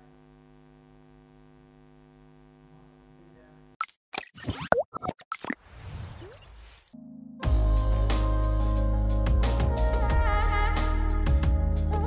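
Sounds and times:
sharp pops and blips: 0:03.8 - 0:06.5.

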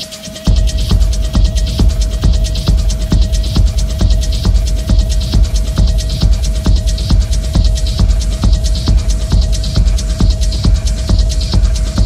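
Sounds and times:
fast hi-hats: 0:00.0 - 0:12.0
techno kick drum: 0:00.0 - 0:12.0
heavy bass: 0:00.4 - 0:12.0.

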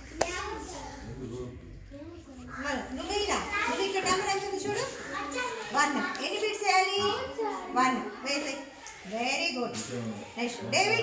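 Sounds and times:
young children talking quietly: 0:00.0 - 0:11.0.

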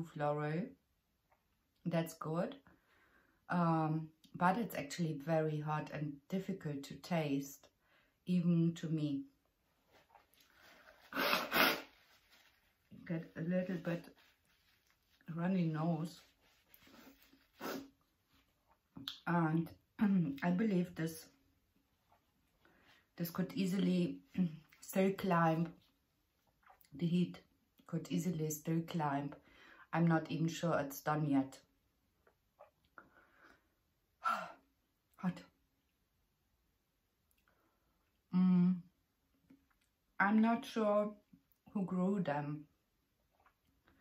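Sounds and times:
woman blowing nose into tissue: 0:10.8 - 0:12.5, 0:16.8 - 0:17.9.

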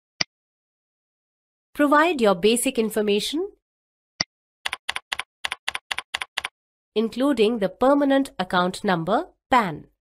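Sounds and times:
typing on computer keyboard: 0:04.6 - 0:06.5.

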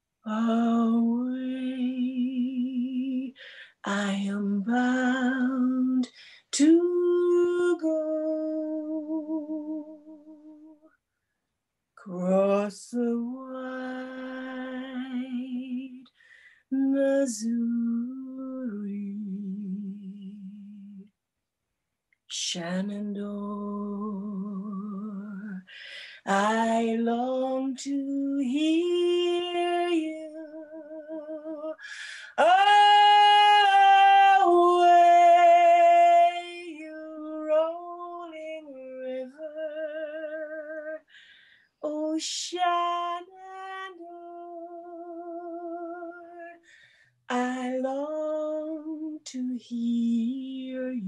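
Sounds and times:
woman singing unaccompanied: 0:00.2 - 0:10.9, 0:12.0 - 0:21.1, 0:22.3 - 0:41.2, 0:41.8 - 0:51.0.

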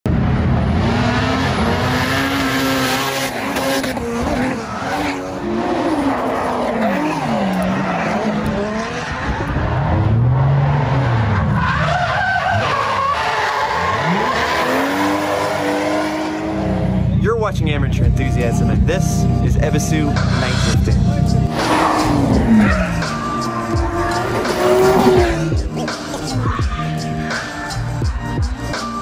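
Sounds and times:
rush of spinning tyres: 0:00.1 - 0:17.2, 0:21.5 - 0:29.0
car engines revving: 0:00.1 - 0:29.0
tyre squeal: 0:21.6 - 0:27.6.

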